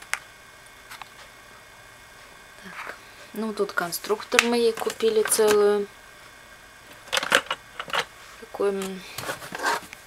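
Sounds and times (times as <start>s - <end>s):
plastic bricks clicking and rattling: 7.1s - 8.1s.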